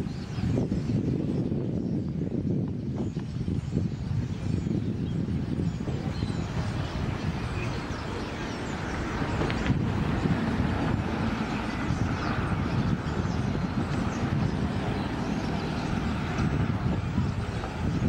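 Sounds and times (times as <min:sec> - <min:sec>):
flock of birds chirping: 0:00.0 - 0:18.0
traffic rumble: 0:00.0 - 0:18.0
wind on microphone: 0:00.0 - 0:18.0.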